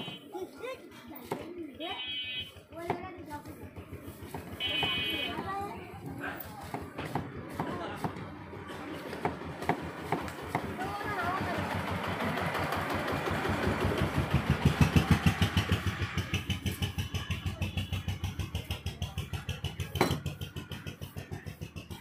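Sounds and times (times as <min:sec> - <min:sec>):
motorcycle engine running: 0:02.6 - 0:07.6, 0:08.3 - 0:22.0.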